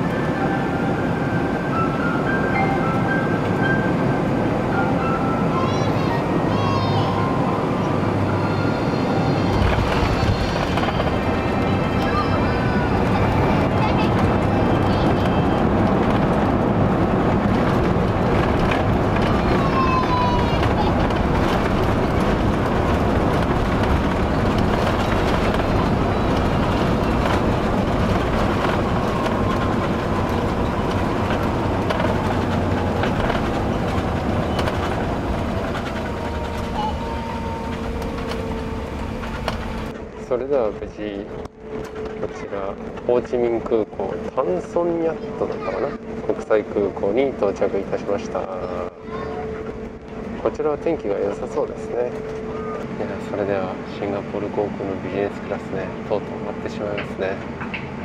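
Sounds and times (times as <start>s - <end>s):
aircraft engines roaring: 0.0s - 58.0s
rushing air: 7.1s - 40.2s
landing gear rumble: 9.1s - 40.3s.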